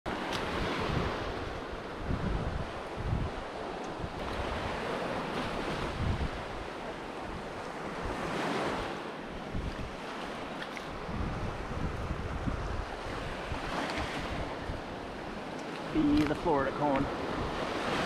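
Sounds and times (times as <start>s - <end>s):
ocean surf washing onto beach: 0.1s - 18.0s
wind buffeting microphone: 0.4s - 18.0s.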